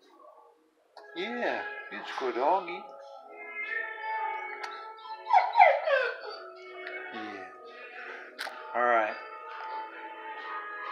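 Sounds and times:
dog whining: 4.8s - 6.8s.

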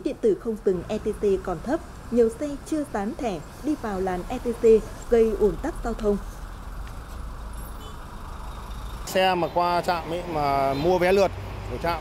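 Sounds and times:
traffic engines idling: 0.0s - 12.0s.

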